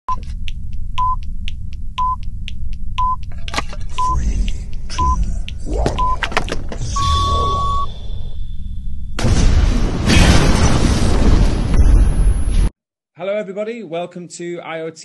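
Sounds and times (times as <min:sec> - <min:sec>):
clock-like ticks: 0:00.1 - 0:06.2
low rumble: 0:00.1 - 0:12.7
short high beeps: 0:06.9 - 0:08.0
long beep: 0:06.9 - 0:09.2.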